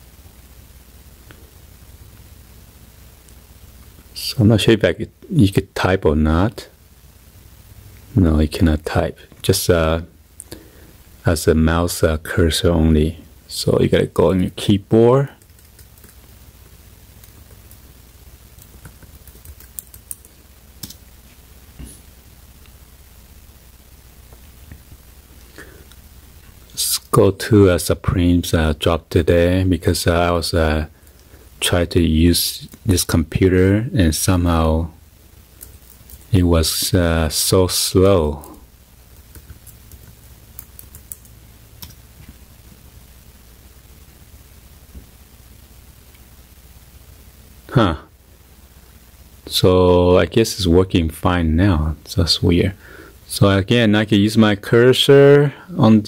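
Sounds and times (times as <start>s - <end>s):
low steady hum: 0.0s - 56.0s
laptop keyboard typing: 15.4s - 16.3s, 18.5s - 21.0s, 39.2s - 42.0s.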